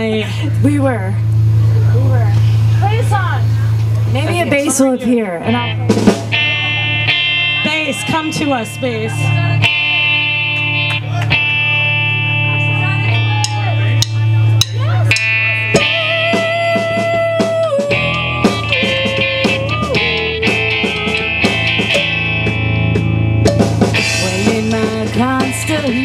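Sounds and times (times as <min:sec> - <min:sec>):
electric guitar notes: 0:00.0 - 0:26.0
drum and cymbal hits: 0:05.8 - 0:06.8, 0:13.2 - 0:26.0.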